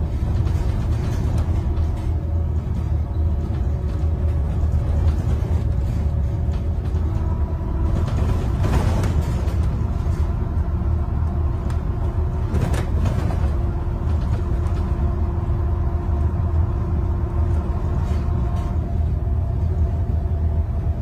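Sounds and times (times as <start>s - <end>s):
bus engine and road rumble: 0.0s - 21.0s
whining tones: 0.0s - 21.0s.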